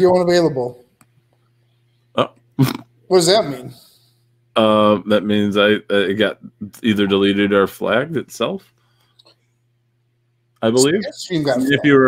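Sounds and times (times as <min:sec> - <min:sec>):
faint low hum: 0:00.0 - 0:12.0
person making throaty sounds: 0:02.2 - 0:02.9.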